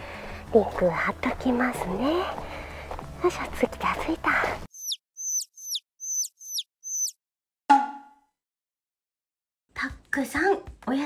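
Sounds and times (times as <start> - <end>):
comic high chirps: 4.8 - 7.2.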